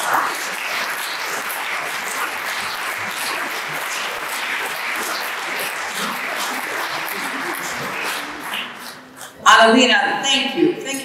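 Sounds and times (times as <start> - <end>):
audience applause: 0.0 - 9.4.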